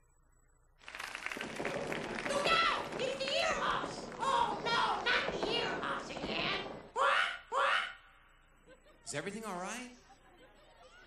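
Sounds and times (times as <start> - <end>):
audience applause: 0.8 - 6.7
children's voices: 2.3 - 8.0.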